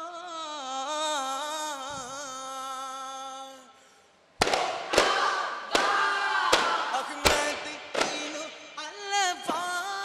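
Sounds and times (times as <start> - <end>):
group singing: 4.8 - 10.0.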